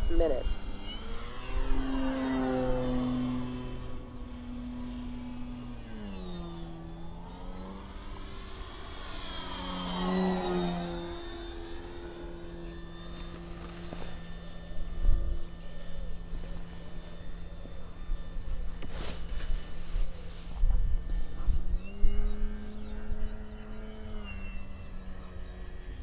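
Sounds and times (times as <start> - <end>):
electric model plane motor humming: 0.0 - 26.0
wind rumble on microphone: 19.3 - 24.1.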